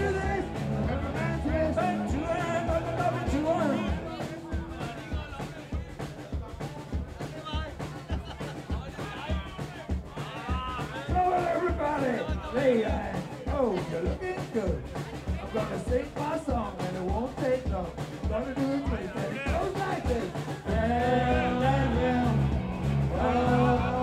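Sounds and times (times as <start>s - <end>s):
person's voice: 0.0s - 5.9s
live rock band: 0.0s - 24.0s
steady bass drum beat: 0.0s - 24.0s.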